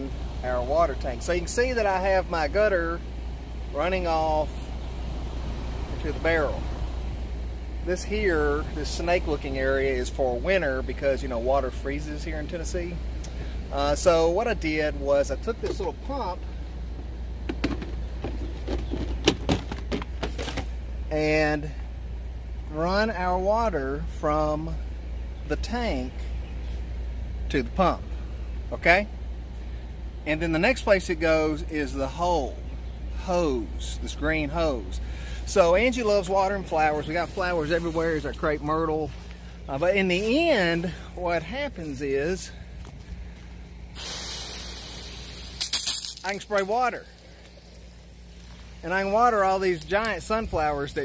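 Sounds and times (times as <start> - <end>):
steady low hum: 0.0 - 51.0
water spraying from hose nozzle: 36.9 - 38.5, 44.0 - 48.8.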